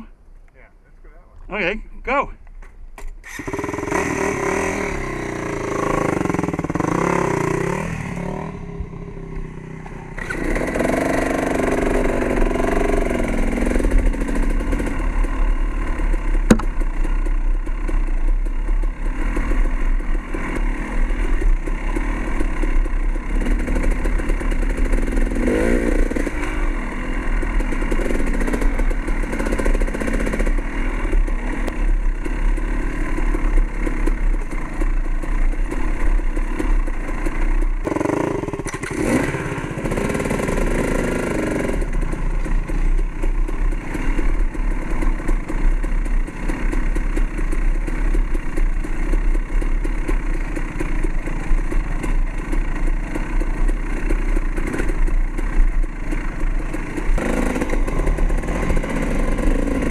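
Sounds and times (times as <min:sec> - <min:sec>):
dirt bike engine revving: 0:03.2 - 0:59.9.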